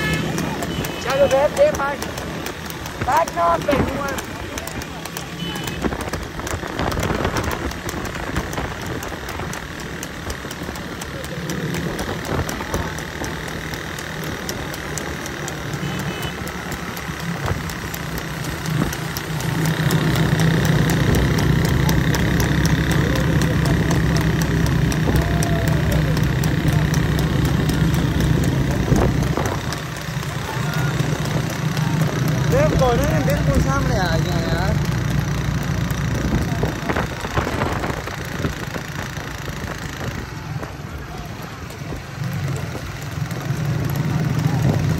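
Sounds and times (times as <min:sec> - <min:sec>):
motorcycle engines running: 0:00.0 - 0:44.9
people shouting: 0:24.9 - 0:26.9.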